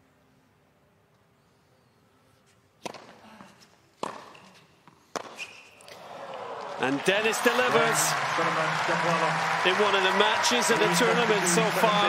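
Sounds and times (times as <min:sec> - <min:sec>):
rackets hitting tennis ball: 0:02.8 - 0:03.2, 0:04.0 - 0:06.0
crowd cheering: 0:05.8 - 0:12.0.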